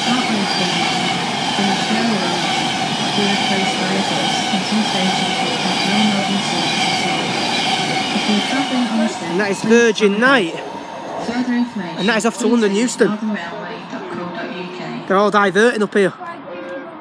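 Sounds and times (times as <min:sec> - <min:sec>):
electric train passing at speed: 0:00.0 - 0:17.0.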